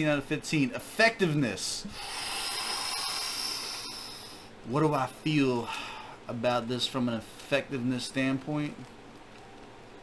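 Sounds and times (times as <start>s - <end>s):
steady hiss: 0.0s - 10.0s.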